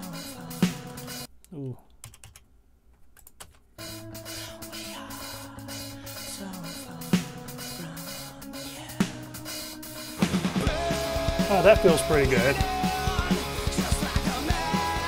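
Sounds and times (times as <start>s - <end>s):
computer keyboard key clicks: 2.0s - 2.4s
rock drum cover music: 4.2s - 15.0s.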